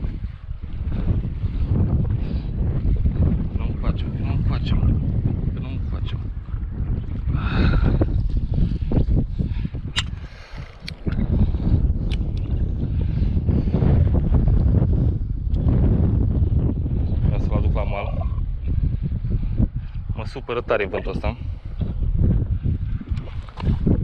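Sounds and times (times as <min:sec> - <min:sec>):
wind buffeting microphone: 0:00.0 - 0:24.0.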